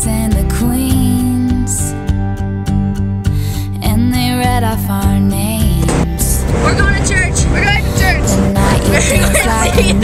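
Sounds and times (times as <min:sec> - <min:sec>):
pop song: 0:00.0 - 0:02.1, 0:03.5 - 0:10.0
van rumble on road: 0:05.6 - 0:10.0
passengers' high voices: 0:06.6 - 0:10.0.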